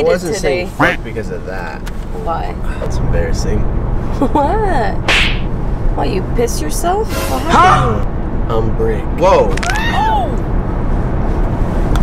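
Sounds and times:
car cabin road rumble: 0:00.0 - 0:12.0
voiced exclamation: 0:07.3 - 0:08.0.

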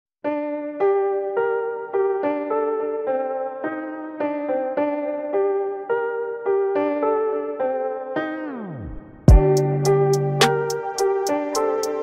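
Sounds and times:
keyboard playing chords: 0:00.2 - 0:12.0.

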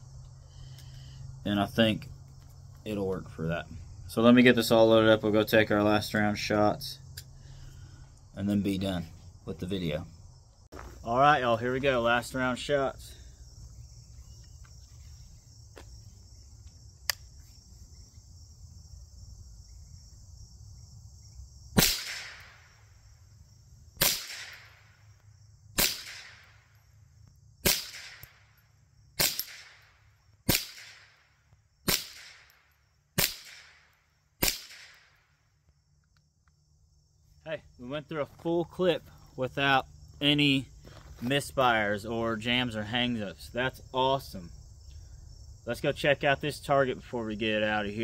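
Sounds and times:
rifle shots with echo: 0:21.8 - 0:22.7, 0:24.0 - 0:24.9, 0:25.8 - 0:26.5, 0:27.6 - 0:28.4, 0:29.2 - 0:29.9, 0:30.5 - 0:31.2, 0:31.9 - 0:32.6, 0:33.2 - 0:35.1.

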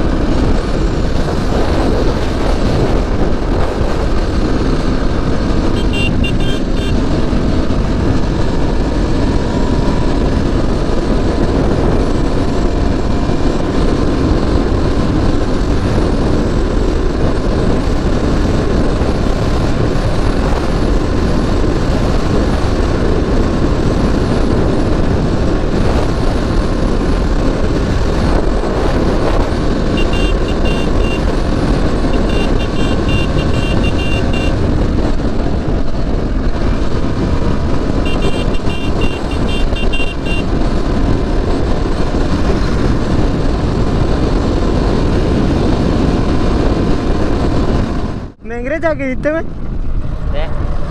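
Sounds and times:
motorcycle engine running: 0:00.0 - 0:48.6
wind noise on microphone: 0:00.0 - 0:50.9
rapid high-pitched beeps: 0:30.0 - 0:31.2, 0:32.1 - 0:34.5.

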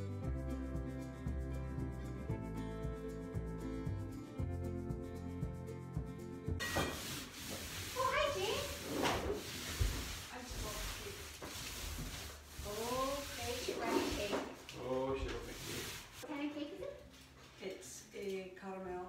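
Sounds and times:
music: 0:00.0 - 0:09.1
paint roller swishing on wall: 0:06.6 - 0:17.4.

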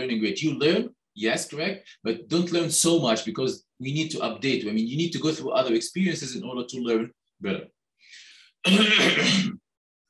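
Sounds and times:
faint breath in: 0:08.0 - 0:08.6
man clearing throat: 0:08.7 - 0:09.6.

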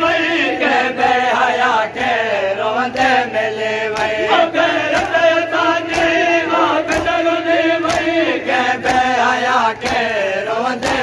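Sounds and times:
men chanting together: 0:00.0 - 0:11.0
rhythmic slaps: 0:00.0 - 0:11.0.

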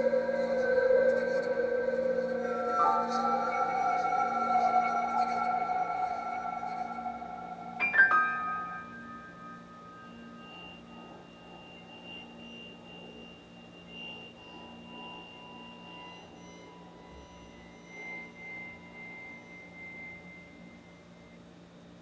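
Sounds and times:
high pure electronic tones: 0:00.0 - 0:21.8
low steady hum: 0:00.0 - 0:22.0
piano chord ringing: 0:07.1 - 0:10.3.

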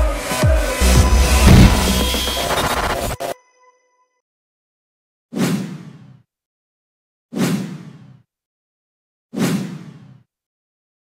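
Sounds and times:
whoosh with low thud: 0:00.8 - 0:02.8.

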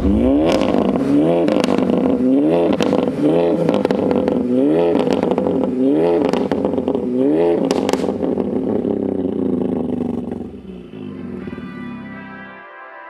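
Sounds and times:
exhaust pops: 0:00.0 - 0:10.6
car engine revving and idling: 0:00.0 - 0:12.3.

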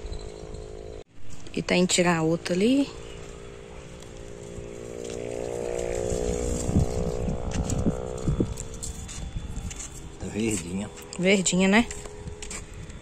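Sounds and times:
motor humming: 0:02.6 - 0:13.0.

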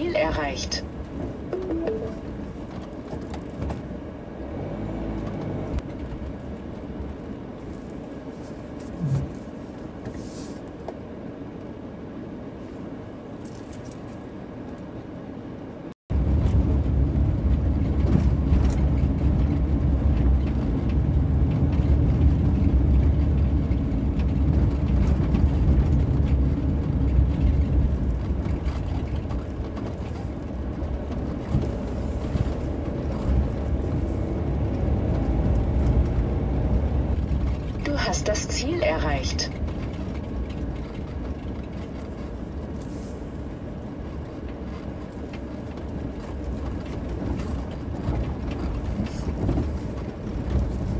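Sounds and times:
vehicle engine and tyres rumbling: 0:00.0 - 0:50.9.

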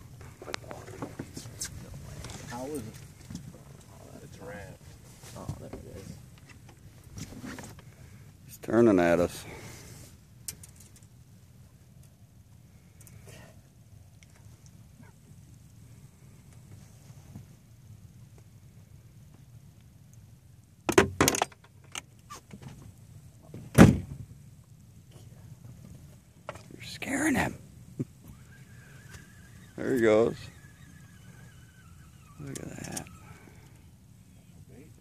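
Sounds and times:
low steady rumble: 0:00.0 - 0:35.0.

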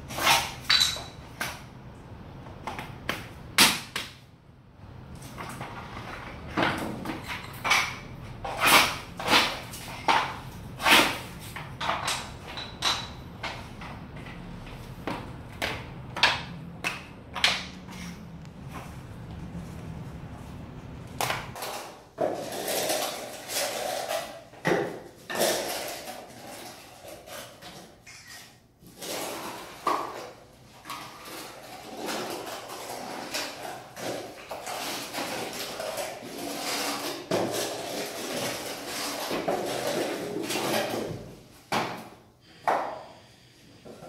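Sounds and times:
low hum: 0:13.3 - 0:21.6.

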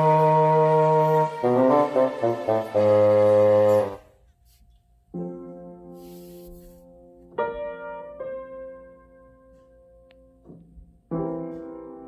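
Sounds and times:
intro music held chord: 0:00.0 - 0:04.1.

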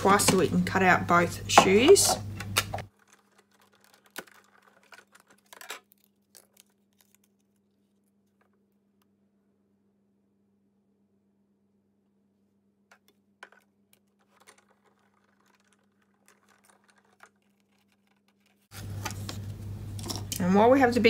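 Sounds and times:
plastic plates clicking and knocking: 0:01.5 - 0:06.0, 0:12.9 - 0:18.6
faint steady hum: 0:18.7 - 0:21.0.

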